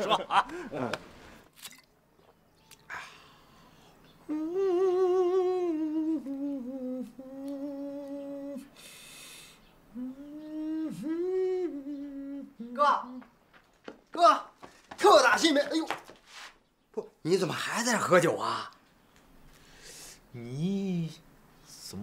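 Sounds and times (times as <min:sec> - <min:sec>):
man humming: 0:02.9 - 0:13.2.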